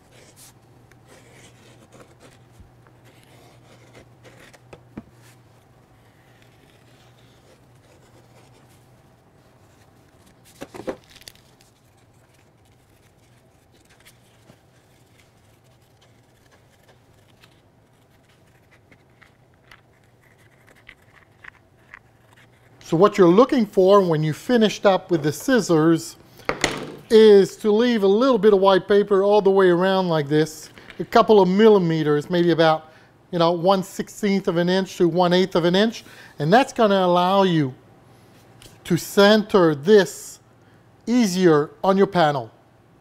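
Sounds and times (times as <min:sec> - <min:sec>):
steady low hum: 0:00.0 - 0:41.1
paper rustling: 0:06.0 - 0:22.7.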